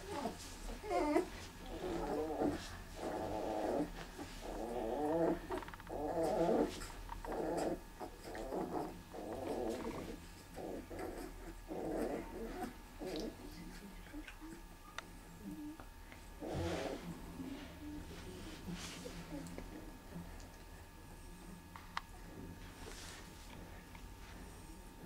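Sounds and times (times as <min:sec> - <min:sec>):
puppy whining: 0:00.0 - 0:14.7.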